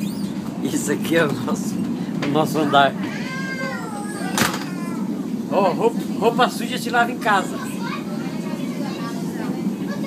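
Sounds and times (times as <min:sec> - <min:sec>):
train low rumble: 0:00.0 - 0:10.0.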